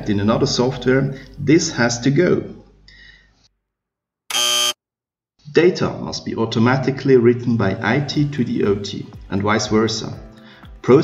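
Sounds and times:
harsh buzzer tone: 0:04.3 - 0:04.8.

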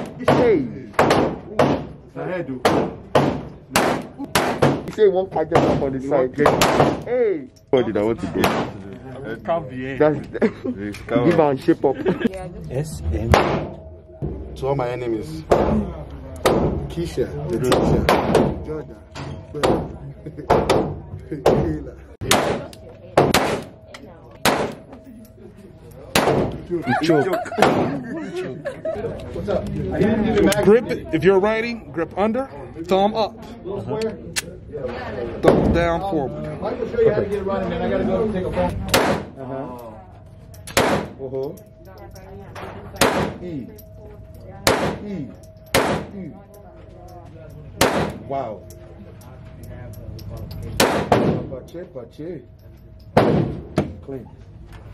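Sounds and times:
handgun shots indoors: 0:00.0 - 0:02.0, 0:02.7 - 0:04.9, 0:06.4 - 0:07.1, 0:08.4 - 0:08.8, 0:22.2 - 0:25.0, 0:26.1 - 0:26.7, 0:27.6 - 0:27.9, 0:38.8 - 0:39.4, 0:40.6 - 0:41.2, 0:42.6 - 0:43.5, 0:44.6 - 0:46.2, 0:47.8 - 0:48.8, 0:50.4 - 0:51.6, 0:53.1 - 0:54.0.

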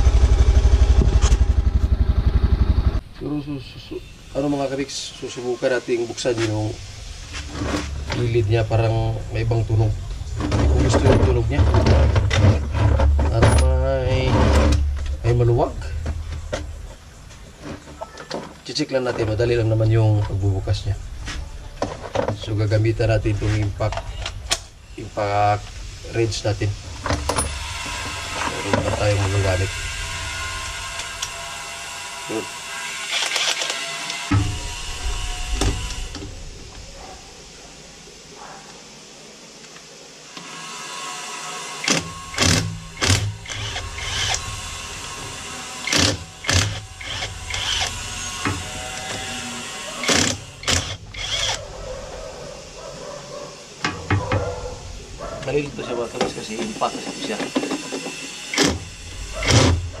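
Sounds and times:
impact wrench bursts: 0:27.0 - 0:36.4, 0:40.4 - 0:51.6, 0:56.0 - 1:00.0.

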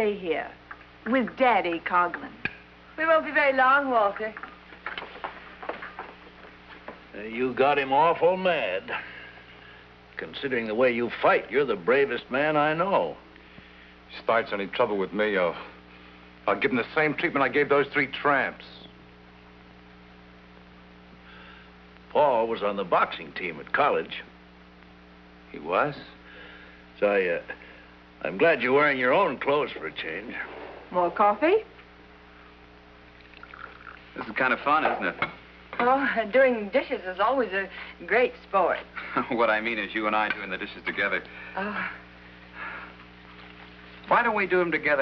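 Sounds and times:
low electrical hum with hiss: 0:00.0 - 0:45.0
soft breath-like noise rush: 0:13.4 - 0:14.1, 0:21.2 - 0:21.9, 0:26.2 - 0:28.2, 0:41.2 - 0:43.1.

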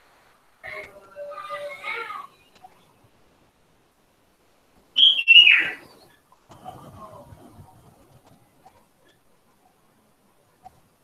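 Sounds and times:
high-pitched chirp-like whistle: 0:05.0 - 0:05.8.

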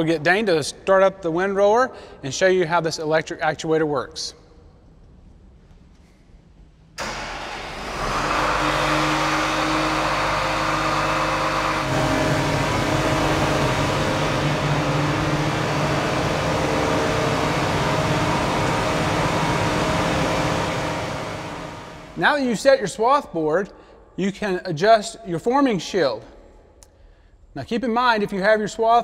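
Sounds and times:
diesel engine starting and running: 0:07.0 - 0:22.3.

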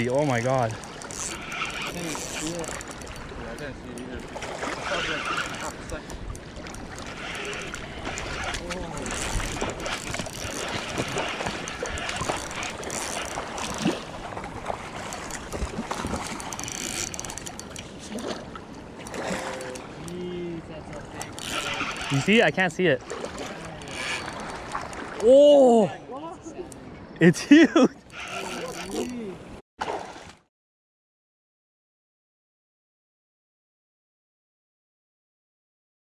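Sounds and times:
water lapping at rocky shore: 0:00.0 - 0:26.0, 0:27.9 - 0:30.5.

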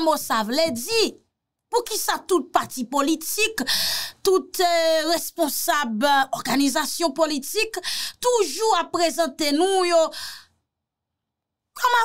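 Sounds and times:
person speaking: 0:00.0 - 0:01.2.

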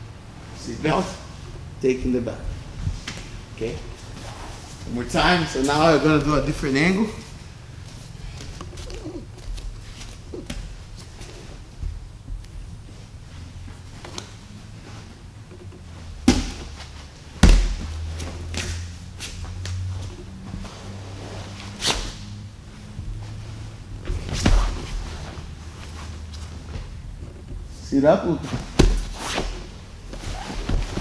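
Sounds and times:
fabric rustling and shuffling: 0:00.4 - 0:31.0
bodies thudding on mat: 0:15.9 - 0:18.7, 0:23.9 - 0:27.7, 0:28.4 - 0:31.0.

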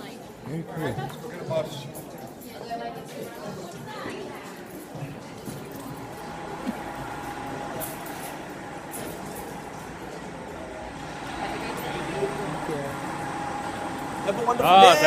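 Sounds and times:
faint voices talking: 0:00.0 - 0:15.0
indoor background hum: 0:04.6 - 0:15.0.

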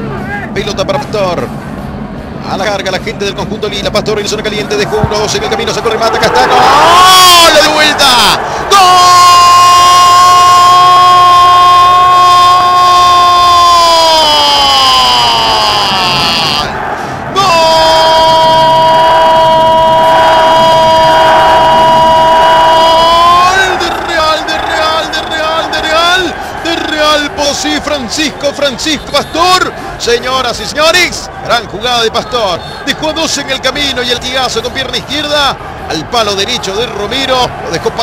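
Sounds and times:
rapid excited talk: 0:02.4 - 0:09.4, 0:23.0 - 0:38.0.

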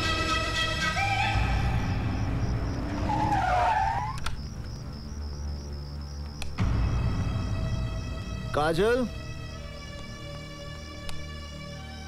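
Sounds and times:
car tyres squealing: 0:00.0 - 0:04.5
sharp clicks: 0:04.2 - 0:04.8, 0:06.2 - 0:06.6, 0:11.0 - 0:11.3.

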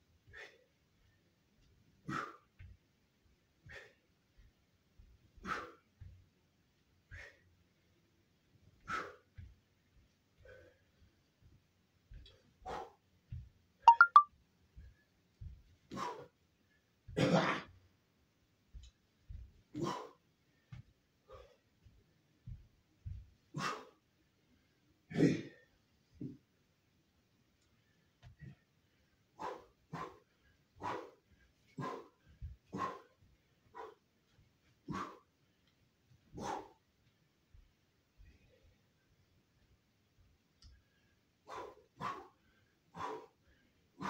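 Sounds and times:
man's forceful breaths: 0:00.1 - 0:13.6, 0:14.7 - 0:17.2, 0:18.6 - 0:25.0, 0:27.7 - 0:39.0, 0:40.7 - 0:44.0.

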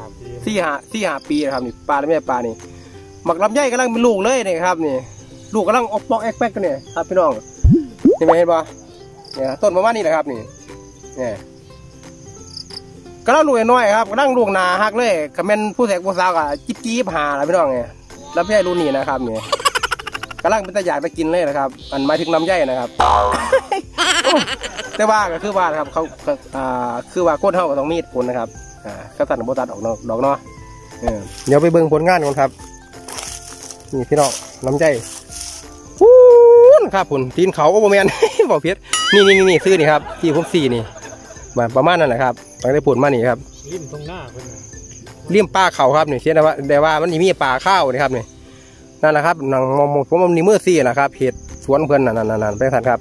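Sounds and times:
insects trilling: 0:00.0 - 0:53.0
drawn-out animal call: 0:21.8 - 0:23.2.

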